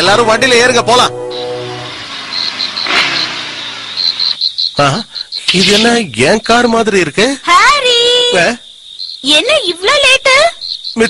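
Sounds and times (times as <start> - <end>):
car driving past: 0.0 - 4.3
crickets chirping: 1.2 - 11.0.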